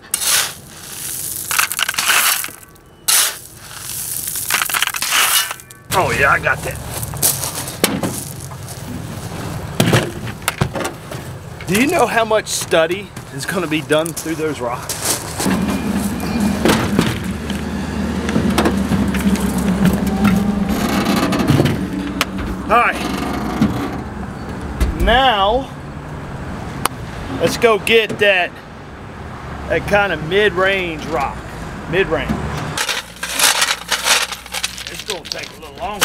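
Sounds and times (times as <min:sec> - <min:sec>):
road traffic rumble: 0:00.0 - 0:36.0.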